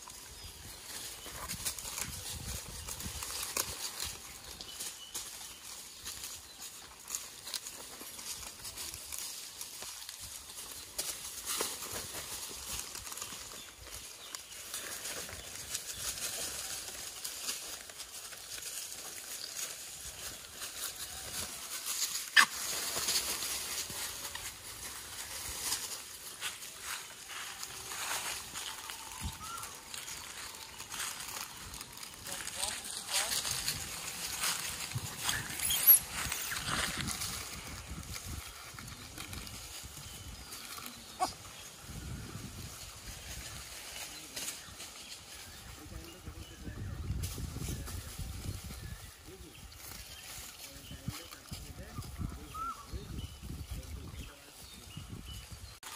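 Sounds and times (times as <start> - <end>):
rustling of leaves and plastic: 0.0 - 55.9.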